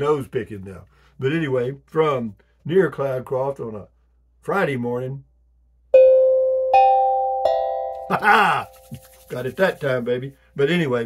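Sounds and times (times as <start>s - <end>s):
three-note bell chime: 6.0s - 8.2s.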